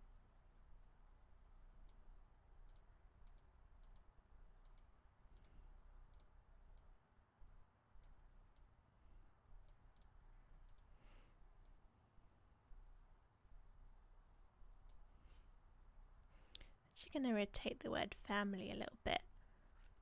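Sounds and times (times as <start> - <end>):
computer mouse clicks: 1.8 - 7.0, 8.0 - 8.7, 9.6 - 10.9, 14.8 - 15.0.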